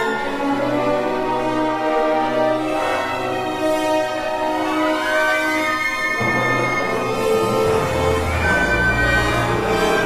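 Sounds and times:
orchestra holding sustained notes: 0:00.0 - 0:10.0.

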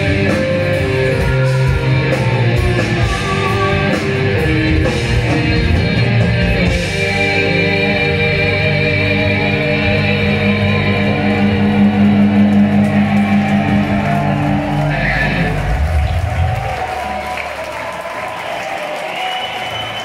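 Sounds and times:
crowd cheering and applauding: 0:00.0 - 0:07.8, 0:10.2 - 0:20.0.

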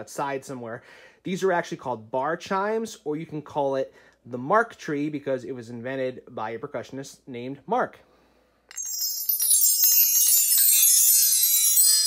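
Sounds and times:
bar chimes ringing: 0:08.7 - 0:12.0.

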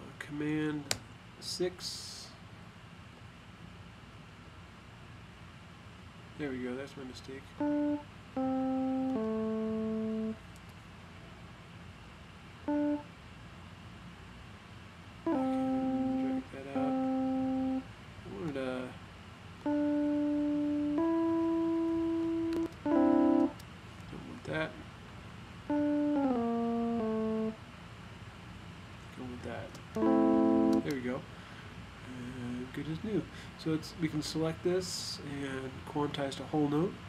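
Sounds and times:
software instrument notes and chords: 0:07.6 - 0:10.4, 0:12.7 - 0:13.1, 0:15.3 - 0:17.9, 0:19.6 - 0:23.6, 0:25.7 - 0:27.6, 0:30.0 - 0:31.0.

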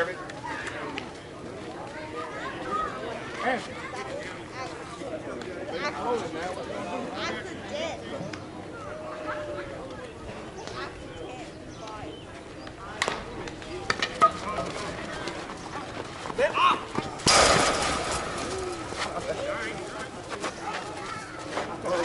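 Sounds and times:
players shouting and chatting: 0:00.0 - 0:22.0
metal bat hitting softball: 0:17.2 - 0:19.1
loud sudden burst of noise: 0:17.3 - 0:18.7.

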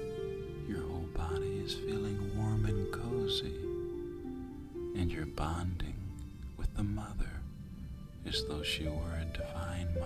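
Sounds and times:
ambient meditation music: 0:00.0 - 0:10.0
soft whispered voice: 0:00.6 - 0:03.7, 0:05.0 - 0:07.5, 0:08.2 - 0:10.0.

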